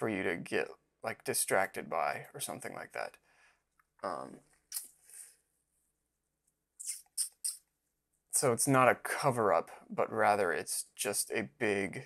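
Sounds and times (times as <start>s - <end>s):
breath sounds: 3.2s - 3.6s, 4.7s - 5.4s.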